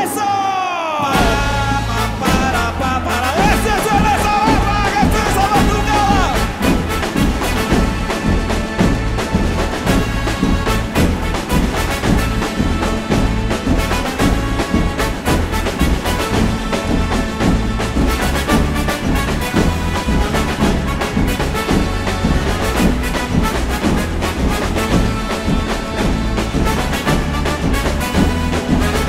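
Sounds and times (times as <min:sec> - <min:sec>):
band playing: 0:00.0 - 0:29.0
marching drum corps: 0:01.0 - 0:29.0.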